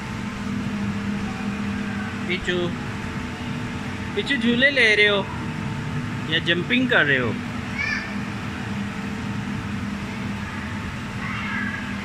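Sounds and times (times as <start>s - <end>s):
blower fan humming: 0.0s - 12.0s
child's voice: 7.7s - 8.2s, 11.2s - 12.0s.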